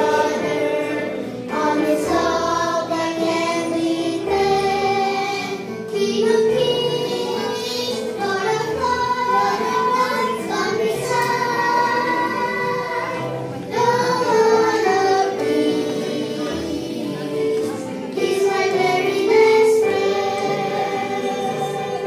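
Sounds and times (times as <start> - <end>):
girls singing gospel: 0.0 - 22.0
musical accompaniment: 0.0 - 22.0.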